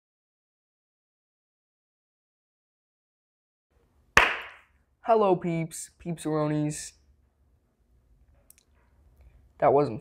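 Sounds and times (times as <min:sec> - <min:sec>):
hand clap: 0:04.2 - 0:04.7.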